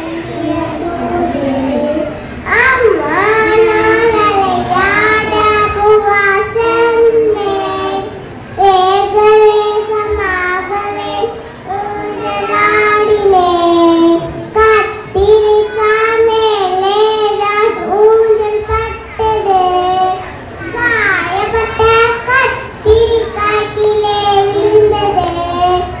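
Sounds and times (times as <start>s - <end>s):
children singing in unison: 0.0s - 26.0s.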